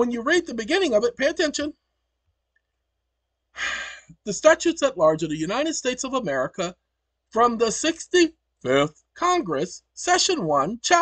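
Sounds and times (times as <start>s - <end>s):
person breathing in: 3.6s - 4.2s.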